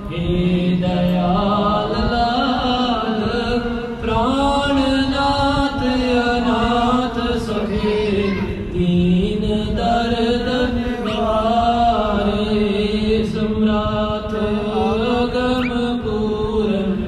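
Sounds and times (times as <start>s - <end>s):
voices chanting held notes: 9.6s - 17.0s.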